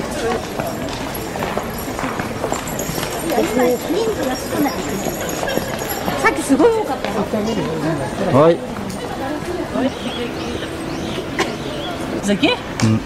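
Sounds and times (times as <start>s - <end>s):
people talking: 0.0s - 13.0s
steady outdoor hiss: 0.0s - 13.0s.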